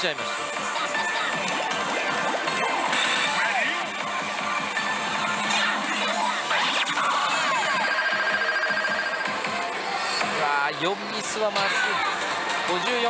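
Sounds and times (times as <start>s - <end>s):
slot machine electronic music: 0.0s - 11.8s.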